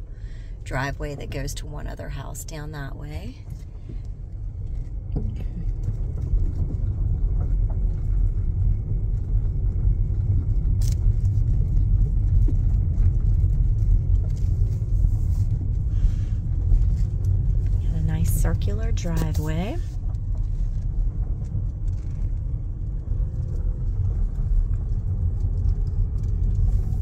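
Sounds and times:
car rolling on gravel: 3.1s - 27.0s.

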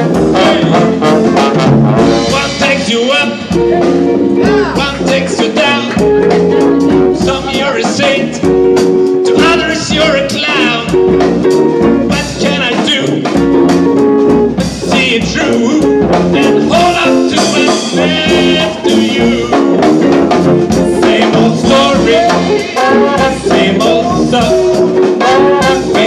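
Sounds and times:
people singing: 0.0s - 8.6s, 9.3s - 11.2s, 14.8s - 26.0s
trumpet: 0.0s - 13.6s, 14.2s - 26.0s
electric guitar: 0.0s - 26.0s
steady drum beat: 0.0s - 26.0s
tuba: 0.0s - 26.0s.

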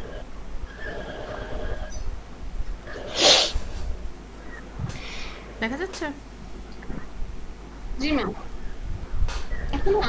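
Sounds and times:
loud breathy burst: 3.1s - 3.9s, 4.9s - 5.5s.

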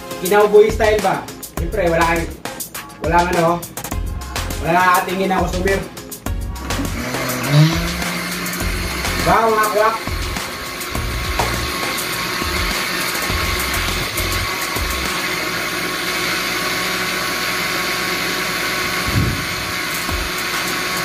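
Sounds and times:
electric blender whirring: 6.6s - 21.0s.

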